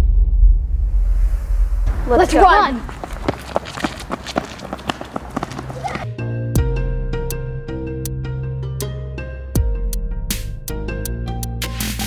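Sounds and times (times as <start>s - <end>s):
people running on concrete: 1.9s - 6.1s.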